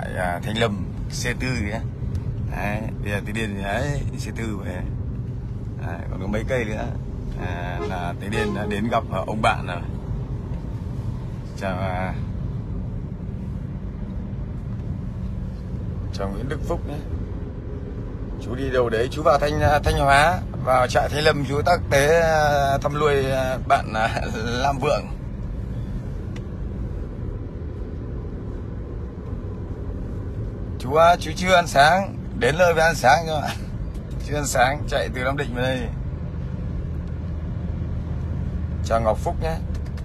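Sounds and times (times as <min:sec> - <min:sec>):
car engine and tyres rumbling: 0:00.0 - 0:40.0.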